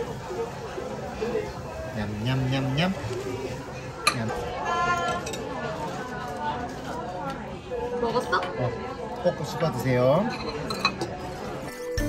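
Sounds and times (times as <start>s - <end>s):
voices in background: 0.0s - 11.8s
metal cutlery clink: 10.3s - 11.2s.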